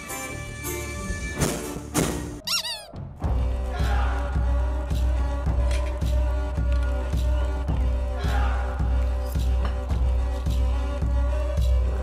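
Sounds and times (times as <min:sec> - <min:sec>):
short high squeak: 0:02.5 - 0:02.9.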